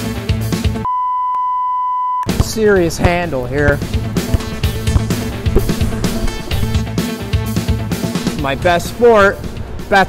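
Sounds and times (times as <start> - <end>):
music with drum beat: 2.3 - 8.8.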